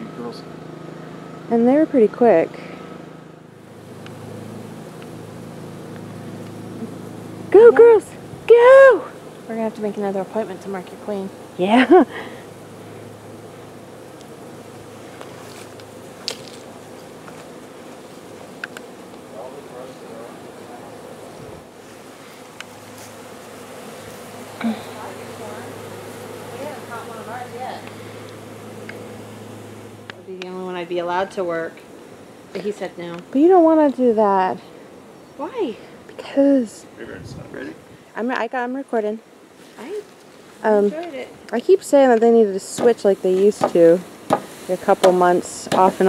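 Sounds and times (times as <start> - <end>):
bee swarm buzzing: 0.0 - 46.0.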